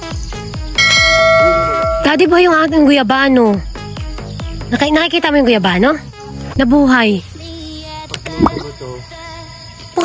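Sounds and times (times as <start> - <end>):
background music with beat: 0.0 - 4.9
bell chime notification: 0.8 - 2.4.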